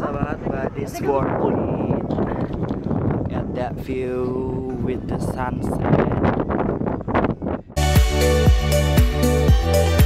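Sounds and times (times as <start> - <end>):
wind gusting on microphone: 0.0 - 7.8
electronic music with steady beat: 7.8 - 10.0.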